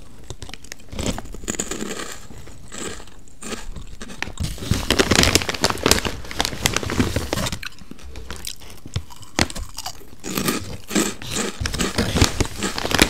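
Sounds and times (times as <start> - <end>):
chewing and mouth clicks: 0.0 - 4.4.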